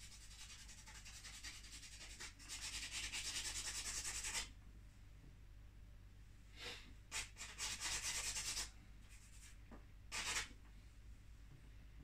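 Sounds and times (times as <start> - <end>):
charcoal scratching on paper: 0.0 - 4.5, 7.1 - 10.5.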